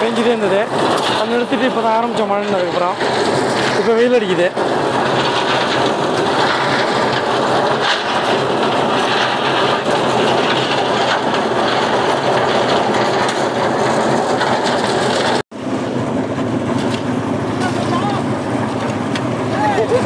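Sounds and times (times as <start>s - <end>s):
concrete mixer running: 0.0s - 20.0s
rattling mixer drum: 0.0s - 20.0s.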